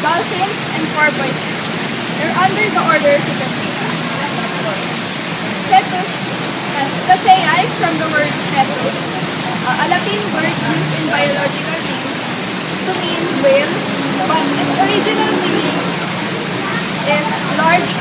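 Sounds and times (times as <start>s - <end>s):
flowing water rushing: 0.0s - 18.0s.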